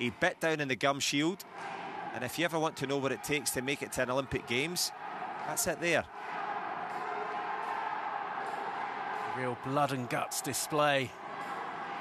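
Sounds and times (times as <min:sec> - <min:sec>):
arena crowd hum: 0:00.0 - 0:12.0.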